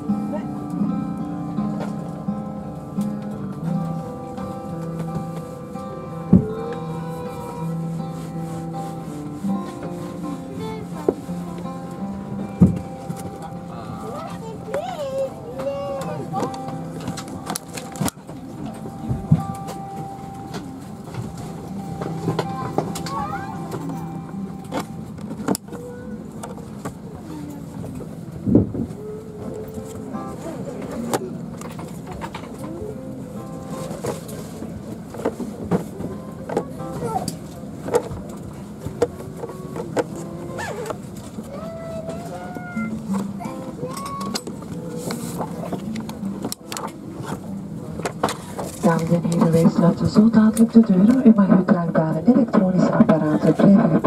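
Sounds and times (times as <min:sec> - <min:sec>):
aircraft air system hum: 0:00.0 - 0:54.0
passengers talking: 0:00.0 - 0:54.0.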